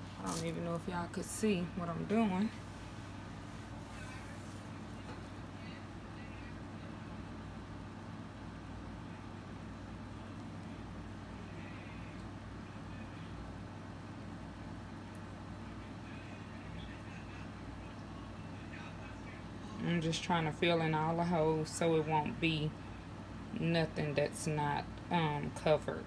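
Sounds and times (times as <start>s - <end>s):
low room hum: 0.0s - 26.0s.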